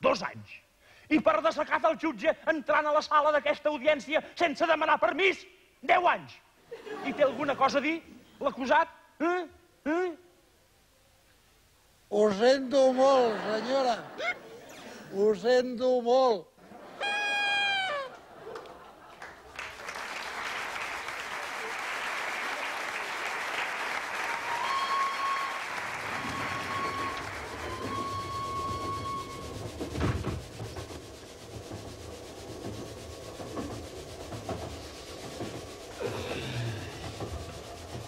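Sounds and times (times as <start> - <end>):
train whistle toots: 17.0 - 18.1, 24.3 - 30.7
audience applause: 17.0 - 29.8
train carriage rumbling on rails: 25.9 - 38.0
thump: 29.7 - 31.0.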